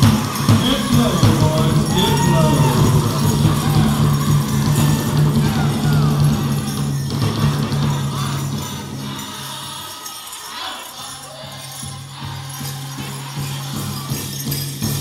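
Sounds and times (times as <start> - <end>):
ankle bells jingling: 0.0 - 15.0
drum group singing with drum: 0.0 - 15.0.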